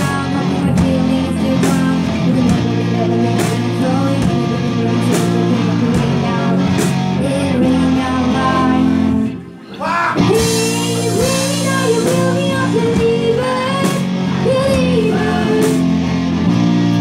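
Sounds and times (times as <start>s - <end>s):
woman singing: 0.0s - 16.0s
drums: 0.0s - 17.0s
electric guitar: 0.0s - 17.0s.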